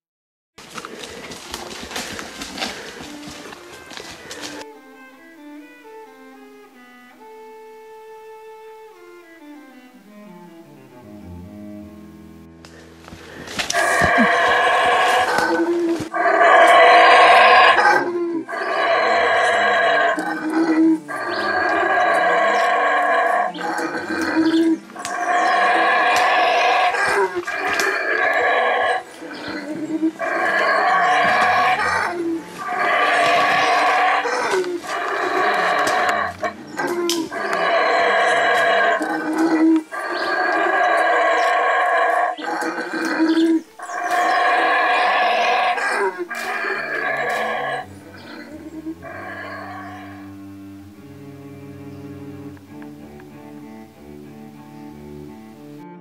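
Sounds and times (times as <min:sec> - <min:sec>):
howler monkeys roaring: 0:13.7 - 0:51.0.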